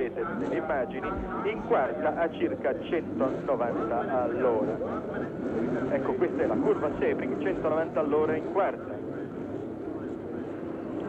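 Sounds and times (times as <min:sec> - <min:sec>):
racing car engine at speed: 0:00.0 - 0:11.0.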